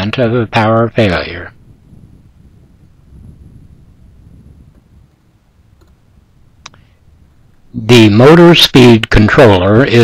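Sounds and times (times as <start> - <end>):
wind buffeting microphone: 0.0 - 8.5.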